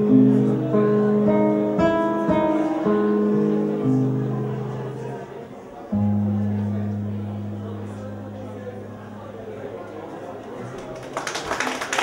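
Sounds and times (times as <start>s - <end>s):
acoustic guitar playing: 0.0s - 10.8s.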